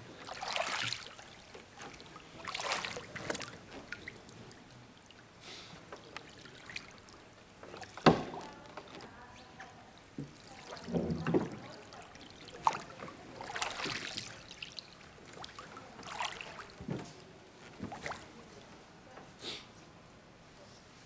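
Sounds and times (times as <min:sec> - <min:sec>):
wooden oar in oarlock: 0:00.0 - 0:04.6, 0:05.8 - 0:14.6, 0:15.2 - 0:18.4
water swishing and splashing: 0:00.0 - 0:18.8.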